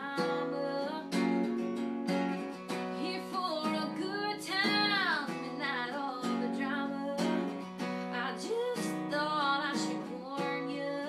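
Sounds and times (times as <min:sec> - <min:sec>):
strummed acoustic guitar: 0:00.0 - 0:11.0
woman singing country song: 0:00.0 - 0:11.0.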